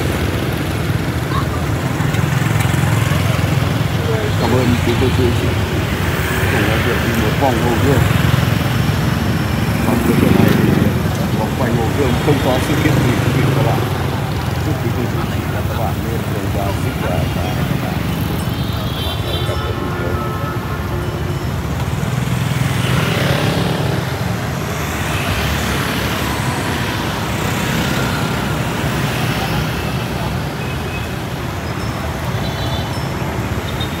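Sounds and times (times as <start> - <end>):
crowd chatter: 0.0 - 22.4, 23.0 - 33.0
city street traffic: 0.0 - 34.0
motor scooters passing: 0.0 - 34.0.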